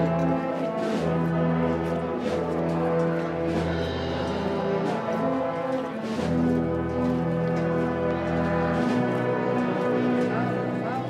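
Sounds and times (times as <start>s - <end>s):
wind band playing a march: 0.0s - 11.0s.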